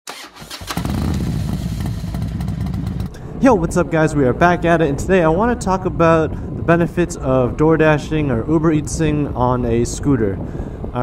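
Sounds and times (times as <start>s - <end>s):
scooter engine starting: 0.1s - 3.2s.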